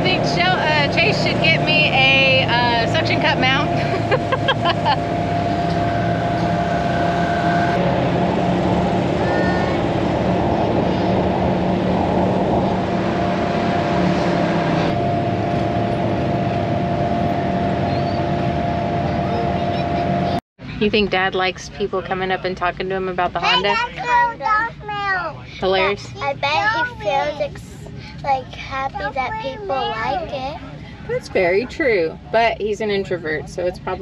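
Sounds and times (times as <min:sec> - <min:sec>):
steady whine: 0:00.0 - 0:34.0
vehicle engine drone: 0:00.0 - 0:34.0.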